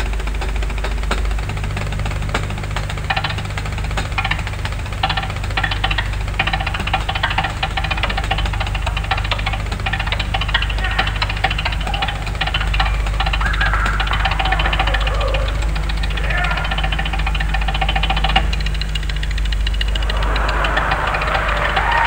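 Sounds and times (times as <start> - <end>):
tape hum: 0.0 - 22.0.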